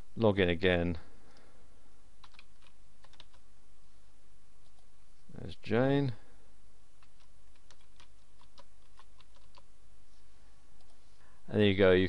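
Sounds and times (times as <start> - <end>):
keyboard typing: 2.2 - 3.4, 7.0 - 9.7.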